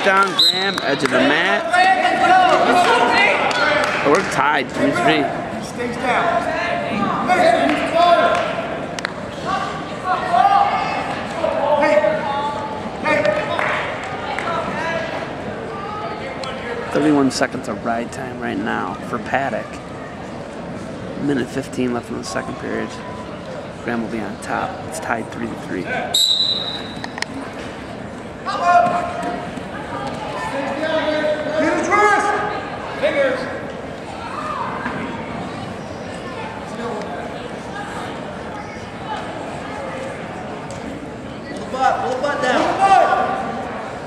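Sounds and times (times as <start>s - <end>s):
referee's whistle blast: 26.1s - 27.0s.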